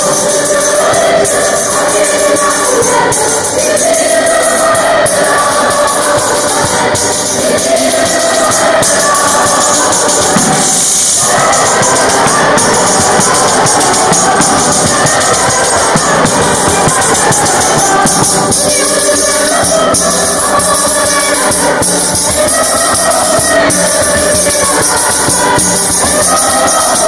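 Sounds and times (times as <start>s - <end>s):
choir singing: 0.0s - 27.0s
frame tambourine beat: 0.0s - 27.0s.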